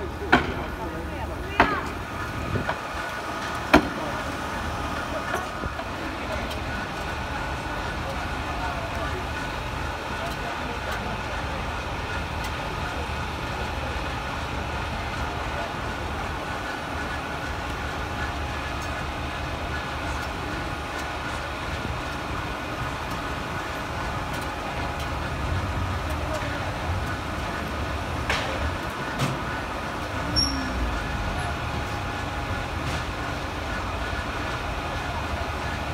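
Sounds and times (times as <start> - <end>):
diesel engines idling: 0.0 - 35.9
faint voices: 0.0 - 35.9.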